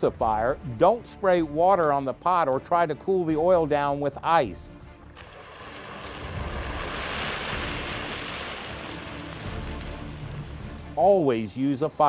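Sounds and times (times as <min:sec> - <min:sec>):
hot oil boiling over hissing: 0:05.2 - 0:11.0.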